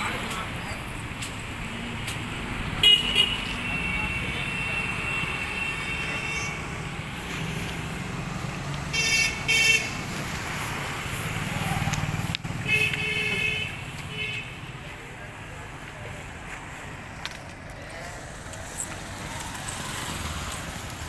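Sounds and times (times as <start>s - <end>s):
traffic engine rumble: 0.0s - 21.0s
vehicle horns tooting: 2.8s - 6.9s, 8.9s - 10.0s, 12.6s - 14.6s.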